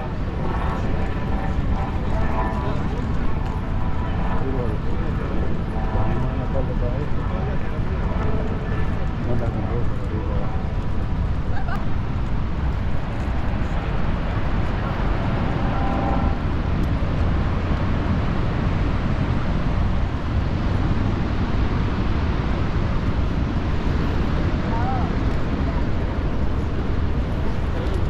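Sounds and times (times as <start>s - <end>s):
people chattering: 0.0s - 10.8s, 24.5s - 28.0s
steady low rumbling: 0.0s - 28.0s.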